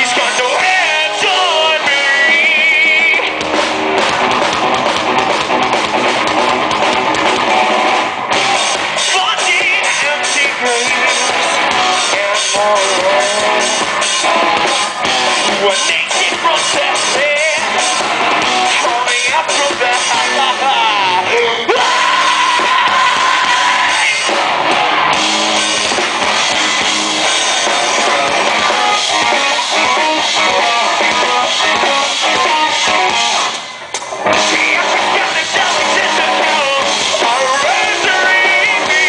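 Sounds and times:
distorted electric guitars: 0.0 - 39.0
drum kit: 0.0 - 39.0
rock band playing: 0.0 - 39.0
vocalist screaming: 20.2 - 24.4.

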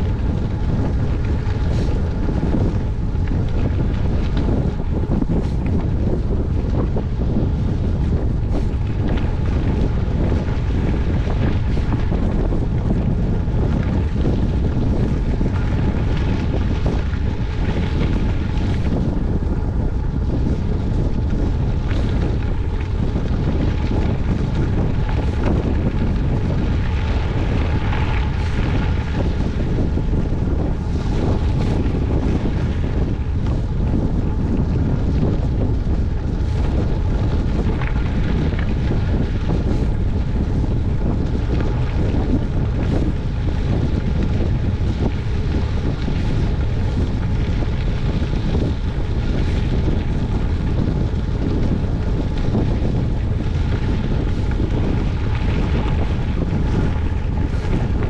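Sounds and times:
bike tyres rolling on gravel: 0.0 - 58.0
wind buffeting microphone: 0.0 - 58.0.

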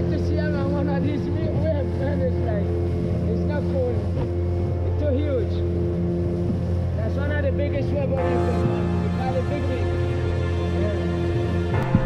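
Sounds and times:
outboard motor running: 0.0 - 12.0
water and wind noise: 0.0 - 12.0.

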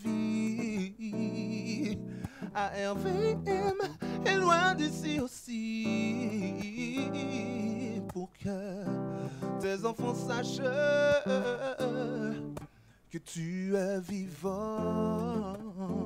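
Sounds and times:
acoustic guitar chords: 0.0 - 16.0
man singing with vibrato: 0.0 - 16.0.

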